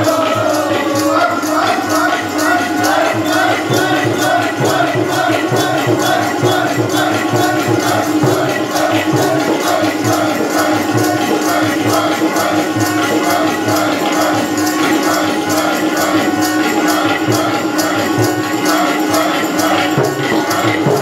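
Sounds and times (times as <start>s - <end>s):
group chanting a devotional melody: 0.0s - 21.0s
harmonium drone: 0.0s - 21.0s
tabla beat: 0.0s - 21.0s.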